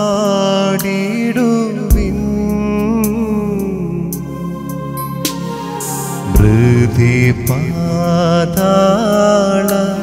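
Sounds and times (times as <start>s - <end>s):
keyboard music: 1.8s - 10.0s.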